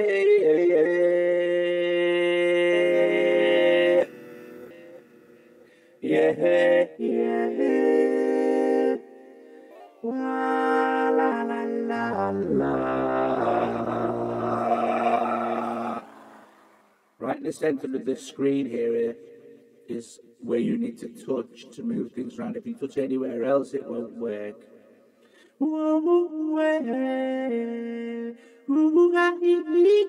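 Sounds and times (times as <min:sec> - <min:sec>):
vocoder synth chords: 0:02.3 - 0:09.1, 0:09.7 - 0:17.0.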